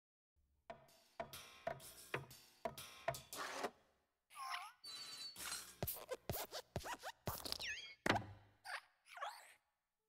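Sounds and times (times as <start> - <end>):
squeaky metal spring creaks: 4.8 - 5.9.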